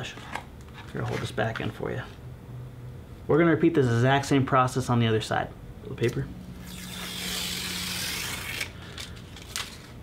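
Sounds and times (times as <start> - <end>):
paper peeling tearing rasp: 6.6 - 9.8.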